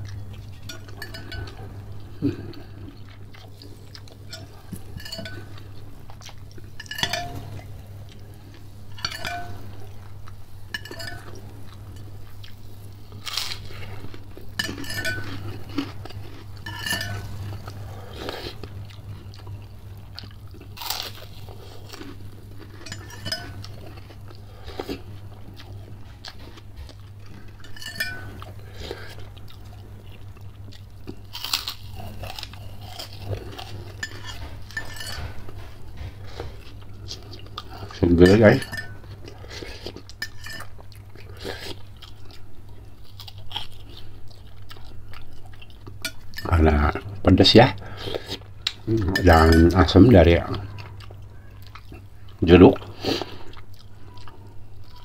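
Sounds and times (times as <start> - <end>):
person chewing and crunching food: 0.0 - 55.0
spoon clinking against glass bowl: 0.6 - 1.7, 4.3 - 5.6, 6.8 - 7.5, 9.0 - 9.8, 10.7 - 11.4, 14.6 - 15.5, 16.6 - 17.4, 22.8 - 23.7, 27.6 - 28.5, 34.0 - 35.4, 38.2 - 39.1, 40.2 - 40.7.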